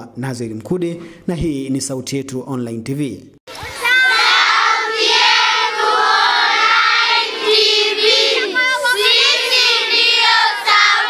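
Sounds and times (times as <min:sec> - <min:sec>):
children singing together: 0:03.5 - 0:11.0.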